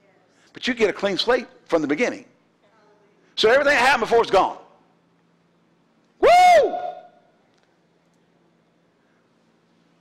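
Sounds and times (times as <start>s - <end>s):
man whooping: 6.2s - 7.2s.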